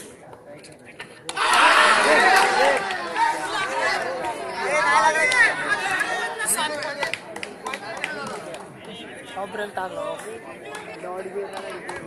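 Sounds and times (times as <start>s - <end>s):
crowd chattering and shouting: 0.0s - 12.0s.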